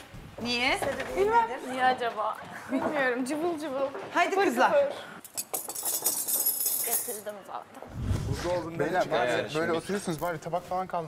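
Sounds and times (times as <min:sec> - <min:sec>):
dishes and cutlery clinking: 0:05.3 - 0:07.4.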